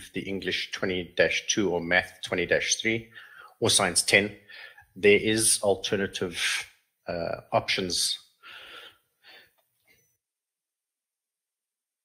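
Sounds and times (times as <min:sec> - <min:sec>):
man breathing in: 0:03.1 - 0:03.6, 0:04.4 - 0:04.9, 0:08.4 - 0:09.6.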